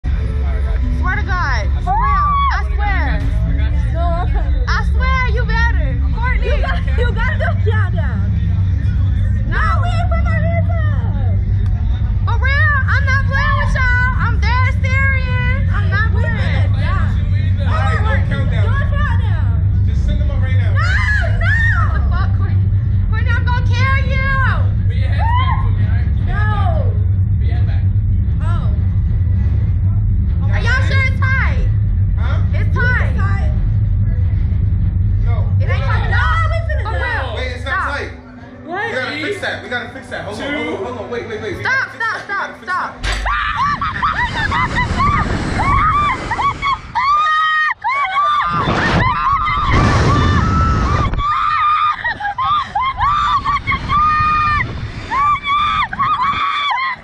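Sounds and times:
steady low rumble: 0.0s - 57.0s
women squealing and exclaiming: 1.8s - 2.9s, 20.8s - 22.3s, 25.2s - 25.8s, 43.1s - 57.0s.

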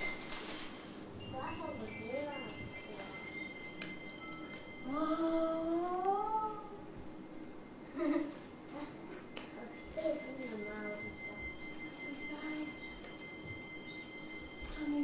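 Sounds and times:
faint steady high tone: 1.2s - 15.0s.

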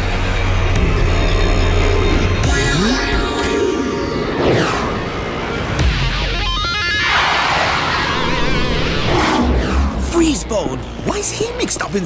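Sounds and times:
cartoon soundtrack music: 0.0s - 12.0s
sweeping whooshes: 3.4s - 5.8s.

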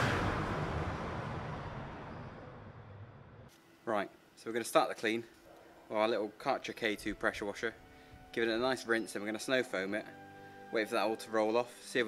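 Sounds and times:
low rumble: 0.0s - 3.5s
noisy whoosh: 0.0s - 3.5s.

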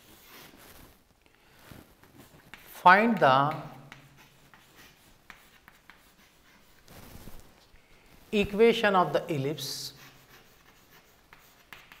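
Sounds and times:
chalk scratching on chalkboard: 0.0s - 0.8s, 1.6s - 7.3s, 8.4s - 12.0s
light chalk taps: 2.3s - 6.6s, 10.0s - 12.0s.

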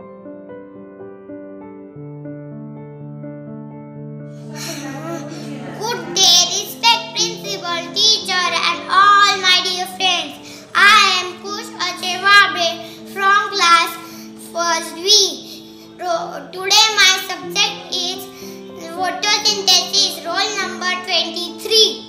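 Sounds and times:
background music of held notes: 4.3s - 22.0s
young boy's voice: 4.6s - 22.0s.

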